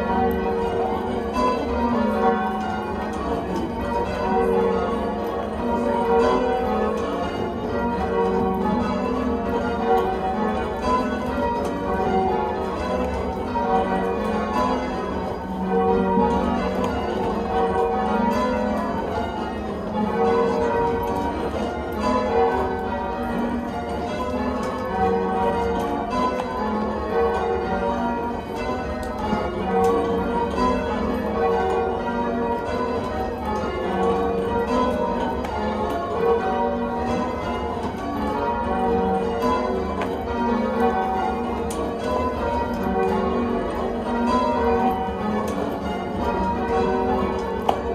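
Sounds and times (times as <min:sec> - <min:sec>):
church bells change ringing: 0:00.0 - 0:47.9.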